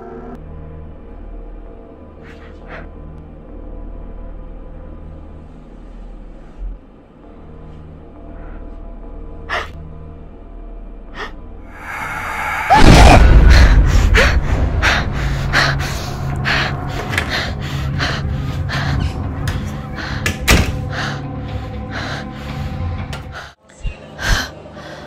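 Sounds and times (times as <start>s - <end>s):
low music drone: 0.0s - 25.0s
heavy low impact hit: 12.3s - 15.4s.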